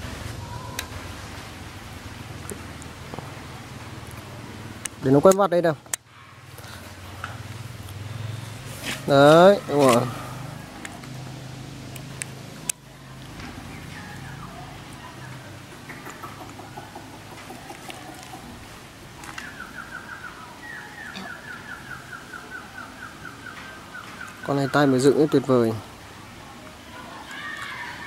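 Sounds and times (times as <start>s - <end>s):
rapid repeated bird chirps: 15.7s - 18.7s, 19.3s - 25.8s
faint bird calls: 15.7s - 25.9s.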